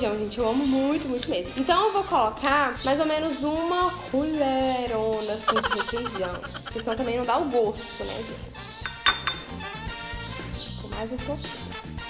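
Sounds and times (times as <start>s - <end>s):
background music: 0.0s - 12.0s
metal spoon clinking glass bowl: 8.8s - 9.6s.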